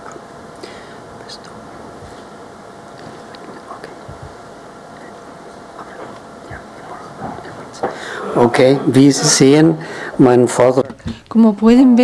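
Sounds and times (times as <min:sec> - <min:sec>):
room hiss: 0:00.0 - 0:12.0
person whispering: 0:01.2 - 0:01.6, 0:03.2 - 0:04.2, 0:05.8 - 0:08.9.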